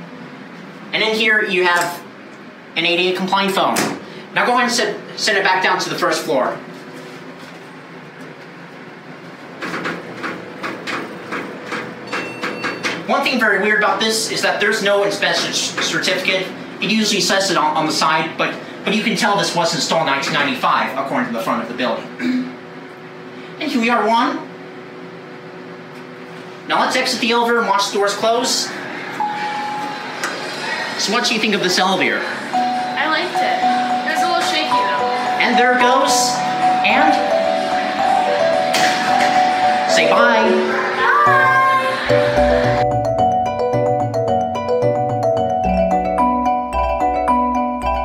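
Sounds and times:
elevator hum: 0:00.0 - 0:48.0
elevator beep: 0:12.0 - 0:13.0, 0:29.1 - 0:30.8, 0:32.3 - 0:48.0
higher electronic tone: 0:32.5 - 0:43.2.

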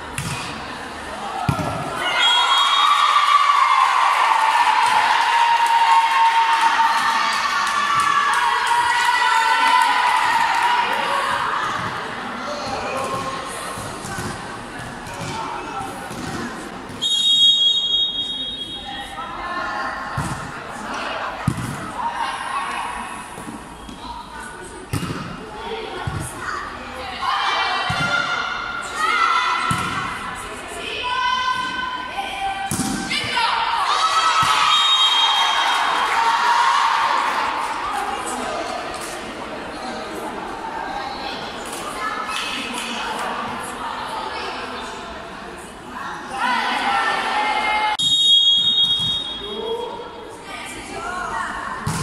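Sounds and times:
referee whistle blast: 0:17.0 - 0:18.8, 0:34.5 - 0:35.8, 0:48.0 - 0:49.7.

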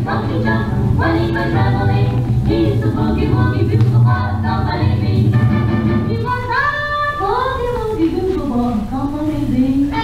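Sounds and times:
children singing: 0:00.0 - 0:07.8
backing music: 0:00.0 - 0:10.0.

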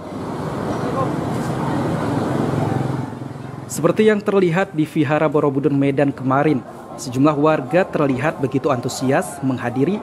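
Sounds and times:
murmur of people talking: 0:00.0 - 0:10.0
traffic: 0:00.0 - 0:10.0.

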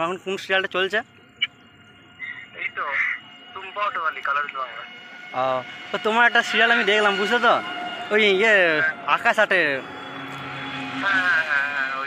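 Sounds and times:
auto-rickshaw engine humming: 0:00.0 - 0:12.0.

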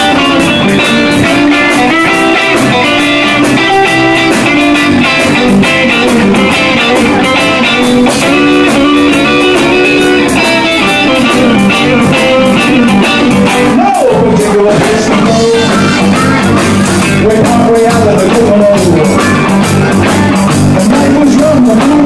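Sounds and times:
electric guitar: 0:00.0 - 0:22.0
rock band playing: 0:00.0 - 0:22.0
steady drum beat: 0:00.0 - 0:22.0.

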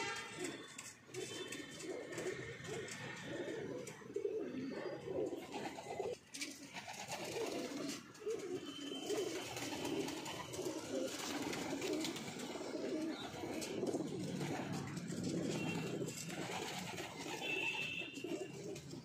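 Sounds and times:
pigeons cooing: 0:00.0 - 0:19.0.

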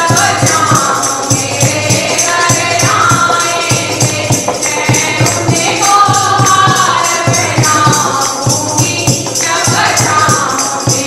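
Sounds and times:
group singing in chorus: 0:00.0 - 0:11.0
jingling percussion beat: 0:00.0 - 0:11.0.

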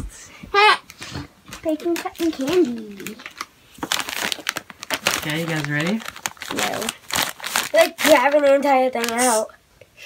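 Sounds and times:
plastic snack bag crinkling: 0:01.5 - 0:09.5.

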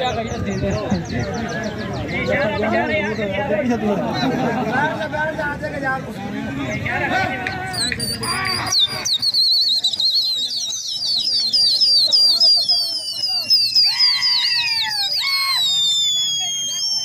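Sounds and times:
high warbling human whistle: 0:07.8 - 0:17.0.

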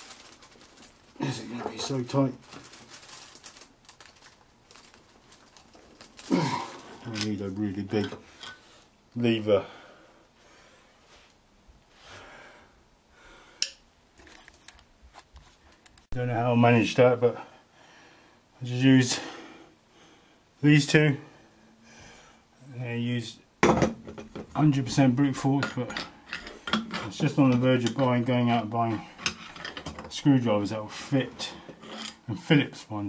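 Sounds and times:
faint rustling: 0:00.0 - 0:09.3
man speaking: 0:01.2 - 0:02.4, 0:06.4 - 0:08.2, 0:09.2 - 0:09.8, 0:16.1 - 0:17.4, 0:18.6 - 0:19.3, 0:20.6 - 0:21.3, 0:24.6 - 0:26.0, 0:27.0 - 0:29.1, 0:30.1 - 0:31.6, 0:32.3 - 0:33.0
screwdrivers clicking and scraping: 0:25.6 - 0:28.0, 0:29.2 - 0:30.1.

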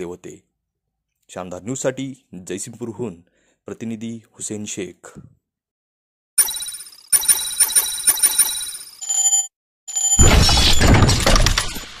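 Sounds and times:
rapid bell-like ringing: 0:06.4 - 0:09.1.

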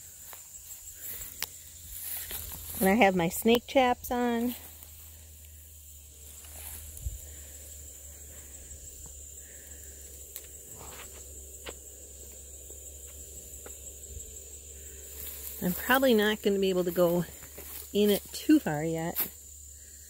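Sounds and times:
high-pitched insect drone: 0:00.0 - 0:20.0
footsteps through grass and brush: 0:00.2 - 0:03.0, 0:06.2 - 0:07.6, 0:15.0 - 0:19.4.

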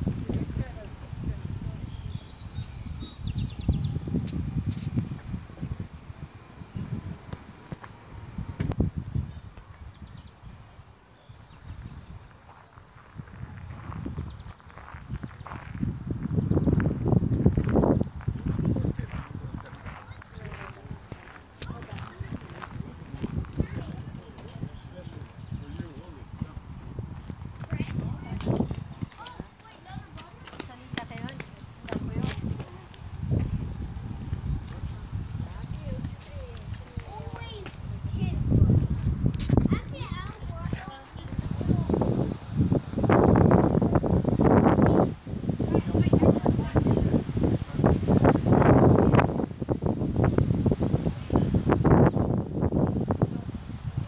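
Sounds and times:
people talking: 0:00.0 - 0:02.3, 0:18.5 - 0:26.7, 0:27.6 - 0:33.6, 0:34.6 - 0:42.3, 0:43.5 - 0:48.2
wind buffeting microphone: 0:00.0 - 0:54.0
footsteps on stone paving: 0:04.1 - 0:05.9, 0:07.3 - 0:08.9, 0:11.8 - 0:44.9.

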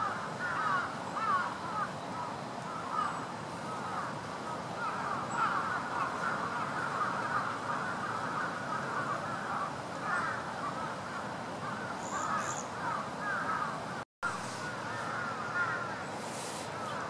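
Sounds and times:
chorus of birds calling: 0:00.0 - 0:17.0.

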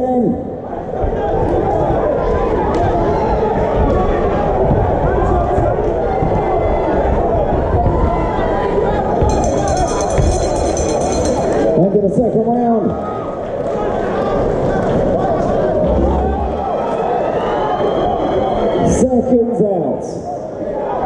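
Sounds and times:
music: 0:09.1 - 0:11.8
crowd shouting: 0:13.0 - 0:18.8.

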